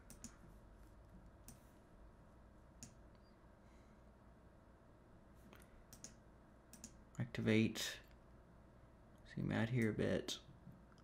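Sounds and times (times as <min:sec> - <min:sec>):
computer mouse clicks: 0:00.0 - 0:00.5, 0:01.4 - 0:01.7, 0:02.8 - 0:03.2, 0:05.5 - 0:07.0.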